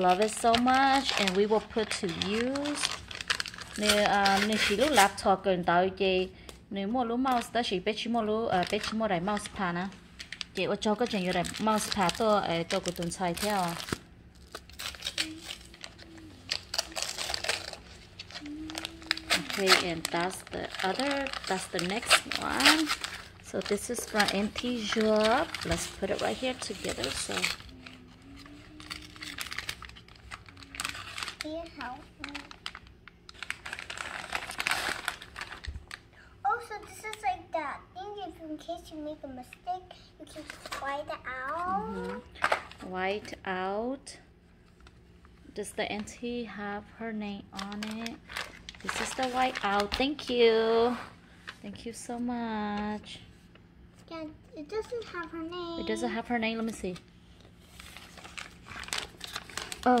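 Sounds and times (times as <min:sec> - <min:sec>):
paper mailer tearing and crinkling: 0:00.0 - 0:05.2, 0:08.6 - 0:36.0, 0:40.3 - 0:42.8, 0:47.5 - 0:51.1, 0:57.6 - 1:00.0.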